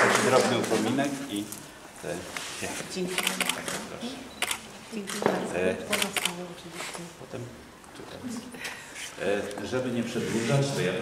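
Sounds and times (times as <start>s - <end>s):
camera shutters clicking: 3.1s - 6.4s.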